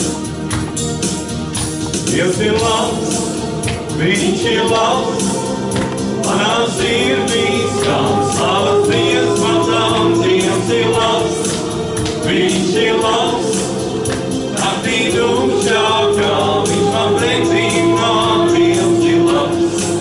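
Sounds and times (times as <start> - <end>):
small vocal group singing worship song: 0.0 - 20.0
sustained low notes: 2.1 - 20.0.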